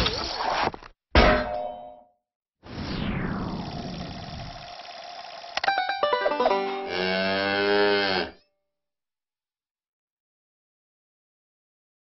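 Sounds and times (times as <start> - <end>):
cow mooing: 6.6 - 8.4.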